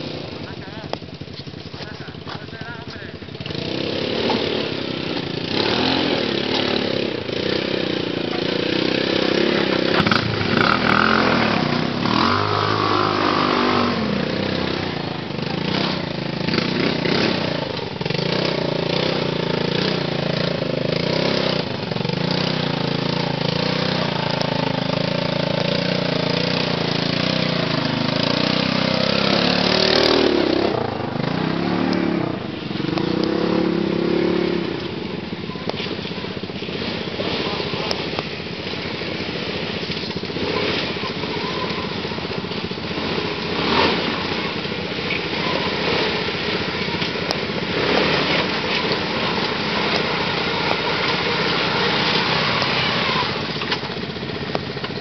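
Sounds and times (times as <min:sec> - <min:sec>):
quad bike engines revving: 0:00.0 - 0:55.0.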